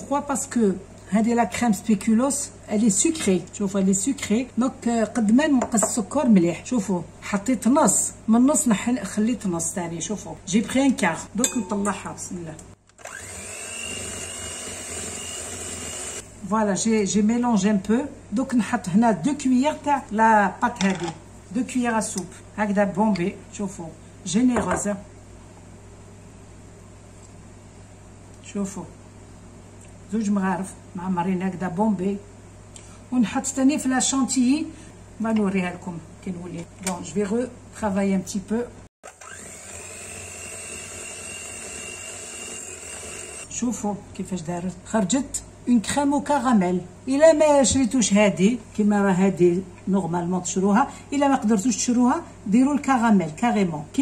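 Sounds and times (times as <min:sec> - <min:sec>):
electric hand mixer whirring: 0:13.0 - 0:16.3, 0:39.0 - 0:43.5.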